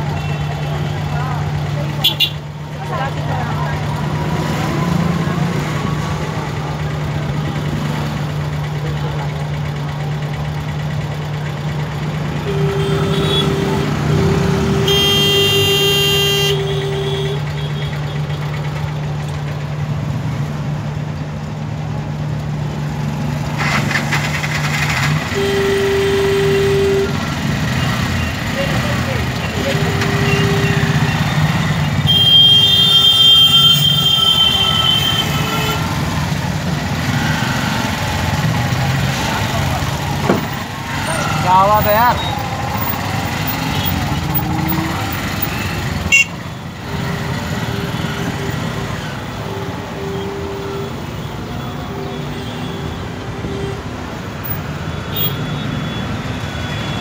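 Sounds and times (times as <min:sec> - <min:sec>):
vehicle horns honking: 0:02.0 - 0:02.4, 0:12.4 - 0:18.4, 0:24.7 - 0:27.4, 0:29.4 - 0:36.1, 0:43.6 - 0:57.0
engine idling: 0:06.5 - 0:13.7
long loud horn blast: 0:12.4 - 0:17.4, 0:25.3 - 0:27.2, 0:47.7 - 0:53.9.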